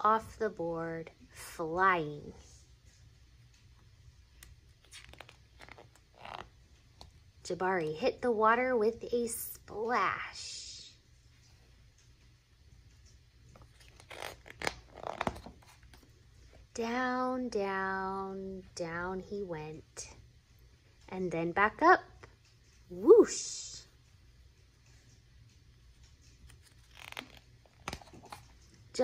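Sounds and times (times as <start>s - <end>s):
paper page rustling: 13.6s - 16.1s, 26.4s - 28.6s.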